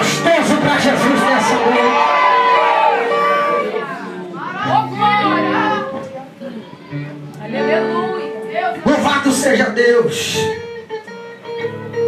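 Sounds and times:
congregation praying aloud: 0.0 - 5.9
steady held notes: 0.0 - 12.0.

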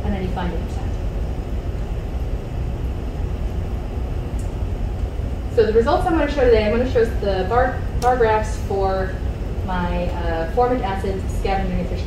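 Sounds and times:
ventilation rumble: 0.0 - 12.0.

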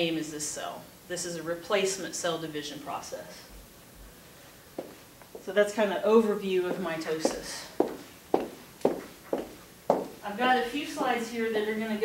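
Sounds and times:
short sharp footsteps: 4.8 - 5.5, 6.7 - 10.2.

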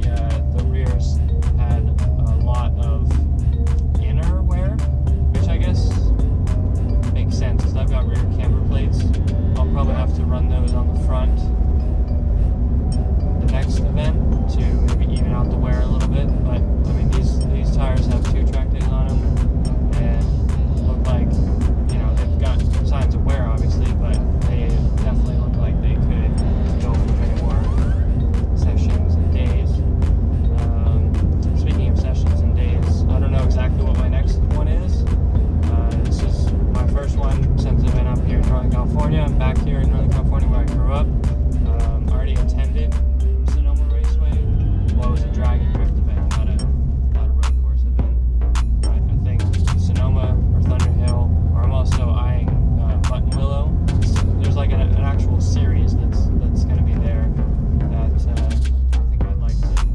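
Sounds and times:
car cabin drone: 0.0 - 59.9
music with beat and singing: 0.0 - 59.9.

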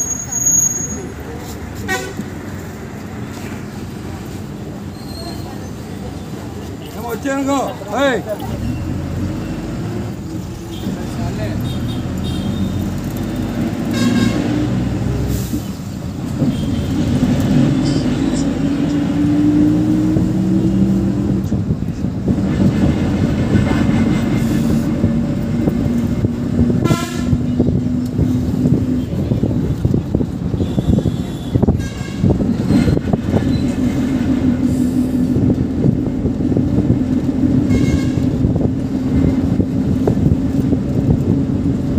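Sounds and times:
bus engine running: 0.0 - 41.9
bus horn blasts: 1.8 - 2.3, 13.9 - 14.7, 26.7 - 27.6, 30.5 - 33.0, 37.6 - 38.5.

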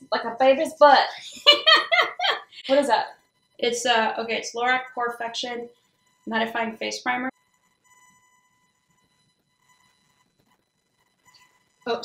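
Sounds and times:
high-pitched electrical buzz: 1.8 - 12.0.

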